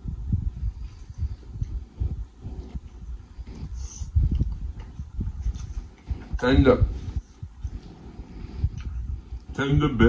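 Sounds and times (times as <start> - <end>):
man chewing wetly: 7.8 - 9.5.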